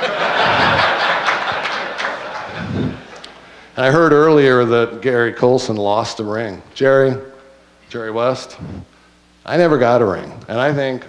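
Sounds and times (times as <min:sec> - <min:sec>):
audience clapping: 0:00.0 - 0:03.4
audience laughing: 0:00.0 - 0:03.4.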